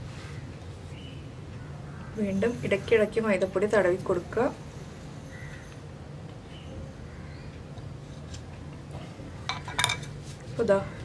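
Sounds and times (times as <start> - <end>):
knife clinking on marble: 9.5 - 10.1.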